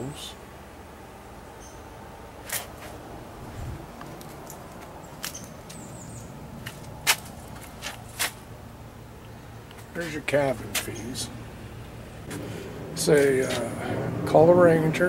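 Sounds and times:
steady low hum: 0:00.0 - 0:15.0
footsteps on concrete: 0:06.6 - 0:08.5.

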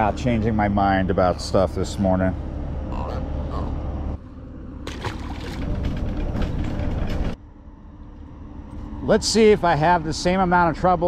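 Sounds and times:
low outdoor rumble: 0:00.0 - 0:11.0.

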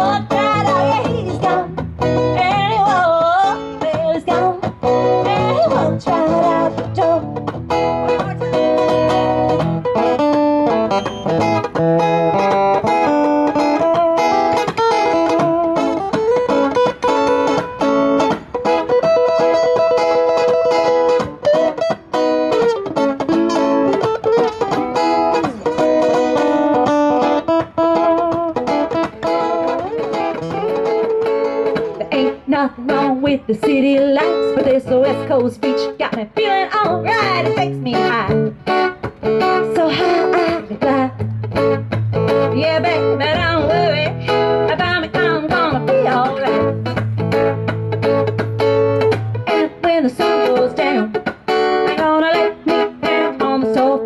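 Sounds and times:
acoustic guitars playing: 0:00.0 - 0:54.0.

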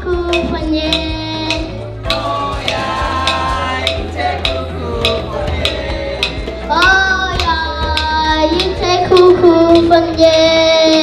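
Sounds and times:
boy singing into microphone: 0:00.0 - 0:11.0
djembe hand drum beat: 0:00.1 - 0:11.0.

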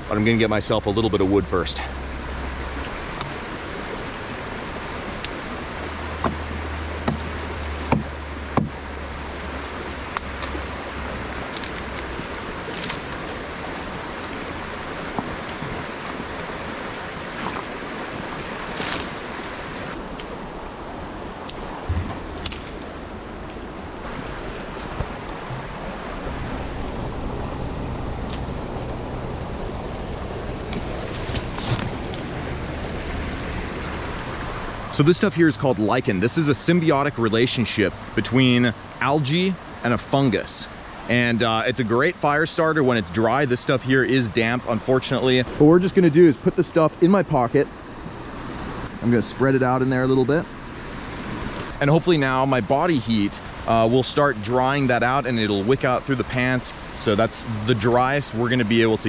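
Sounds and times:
creek flowing over stones: 0:00.0 - 0:59.0
twigs snapping: 0:11.4 - 0:13.2, 0:18.7 - 0:19.2, 0:21.4 - 0:23.7.

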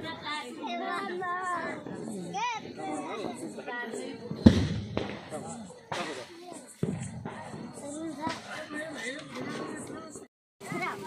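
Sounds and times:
children's voices: 0:00.0 - 0:11.0
firecracker bangs: 0:04.3 - 0:08.6.

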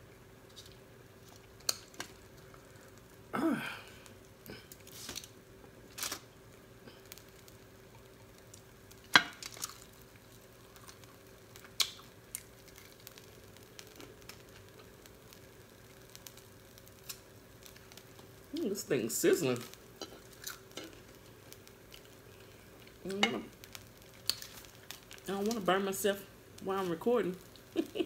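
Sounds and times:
faint steady hum: 0:00.0 - 0:28.0.

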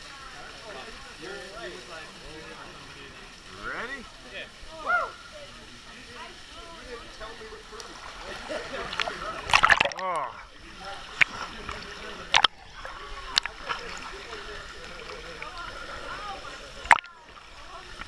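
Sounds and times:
people calling out: 0:04.7 - 0:05.4
water splashing loudly: 0:07.9 - 0:10.2, 0:10.8 - 0:17.9.

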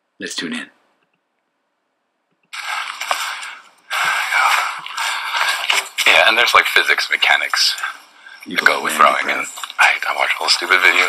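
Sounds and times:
faint high steady tones: 0:08.4 - 0:09.6.

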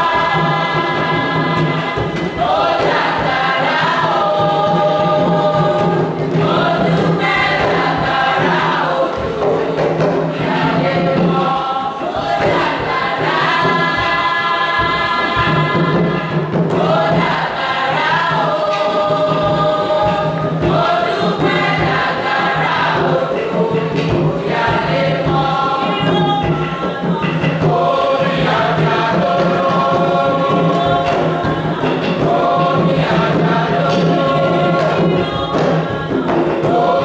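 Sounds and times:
choir singing held notes: 0:00.0 - 0:37.0.

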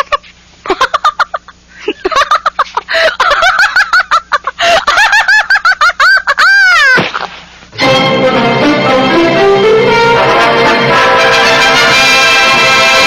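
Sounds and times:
woman laughing hysterically: 0:00.0 - 0:07.2.

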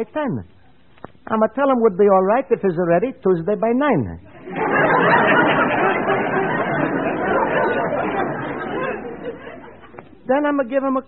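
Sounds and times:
audience laughing: 0:04.3 - 0:10.3.

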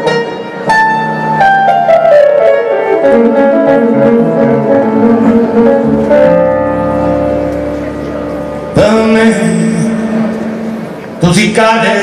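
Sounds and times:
electronic keyboard chord: 0:00.0 - 0:11.2.

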